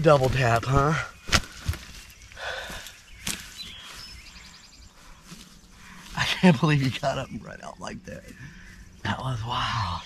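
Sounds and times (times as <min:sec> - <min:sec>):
footsteps in dry grass: 0:00.0 - 0:07.3.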